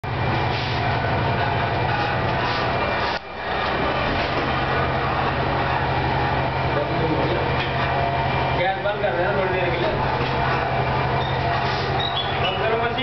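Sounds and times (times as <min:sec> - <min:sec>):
machine motor and drum rumbling: 0:00.0 - 0:13.0.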